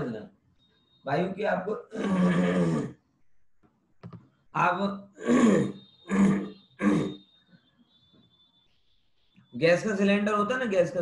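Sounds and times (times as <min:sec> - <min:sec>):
man's harsh wordless vocal sounds: 0:01.7 - 0:02.9, 0:04.6 - 0:07.1.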